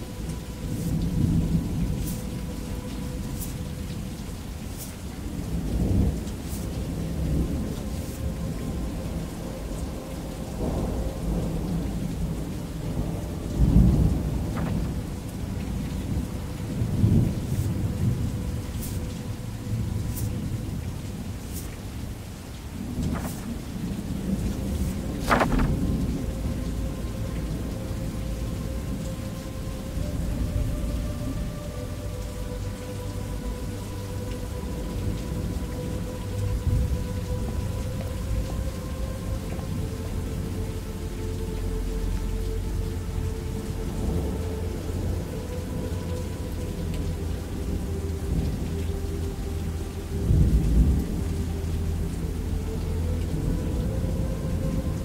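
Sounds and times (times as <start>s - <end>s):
low rolling thunder: 0.0s - 22.2s, 22.8s - 29.1s
steady rain: 0.0s - 55.0s.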